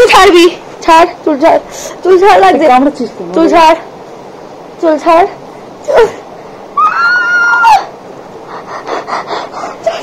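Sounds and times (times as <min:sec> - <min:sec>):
woman squealing: 0:06.8 - 0:07.9.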